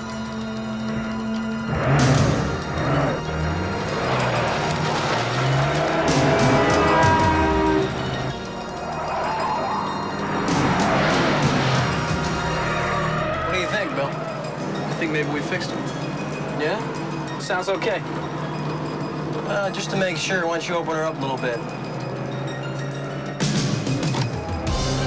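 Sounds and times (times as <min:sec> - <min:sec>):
film score music: 0:00.0 - 0:25.0
sports car engine revving: 0:00.8 - 0:08.4.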